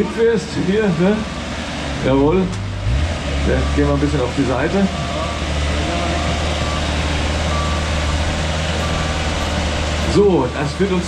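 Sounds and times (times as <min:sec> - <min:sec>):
low machine drone: 0:00.0 - 0:11.0
travel alarm beeps: 0:04.8 - 0:05.4, 0:06.1 - 0:10.1.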